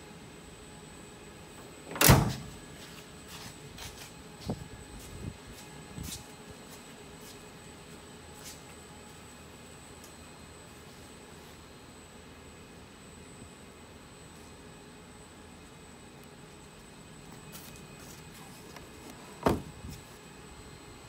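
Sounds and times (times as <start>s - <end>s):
faint high whine: 0.0s - 21.0s
shop background hum: 0.0s - 21.0s.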